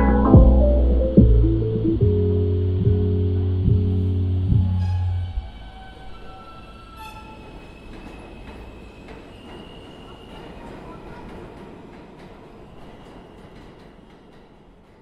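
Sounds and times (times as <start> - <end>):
faint high tones: 0.0 - 2.0
low rumbling noise: 0.0 - 5.2.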